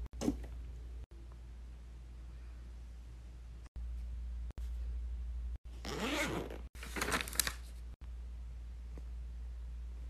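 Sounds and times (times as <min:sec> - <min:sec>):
low steady hum: 0:00.0 - 0:06.0, 0:06.9 - 0:10.0
zipper pulled: 0:05.8 - 0:06.7.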